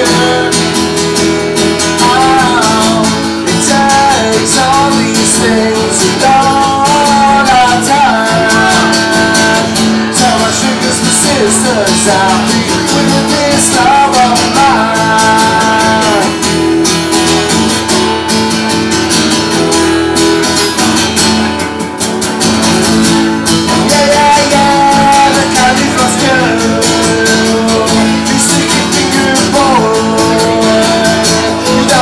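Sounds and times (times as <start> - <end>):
person singing: 0.0 - 16.7, 23.3 - 32.0
strummed guitar: 0.0 - 32.0.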